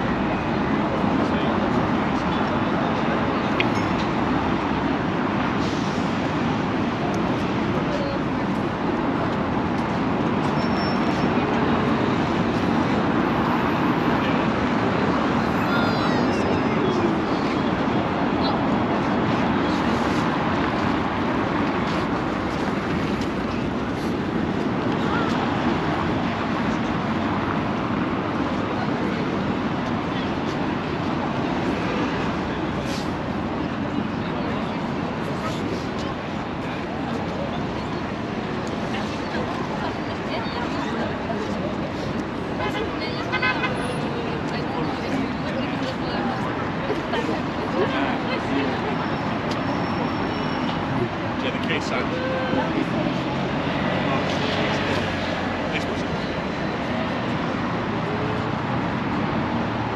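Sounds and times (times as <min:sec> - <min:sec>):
city traffic: 0:00.0 - 0:59.9
faint high squeal: 0:10.6 - 0:11.2.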